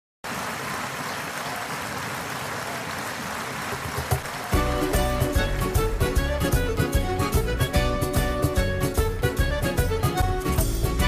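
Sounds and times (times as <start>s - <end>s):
audience applauding: 0.3s - 6.9s.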